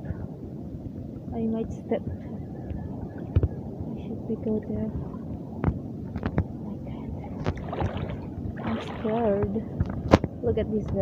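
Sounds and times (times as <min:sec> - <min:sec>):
water sloshing while wading: 0:04.4 - 0:10.4.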